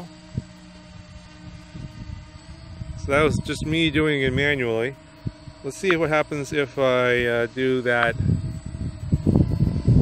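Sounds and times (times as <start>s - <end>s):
drone rotors humming: 0.0s - 10.0s.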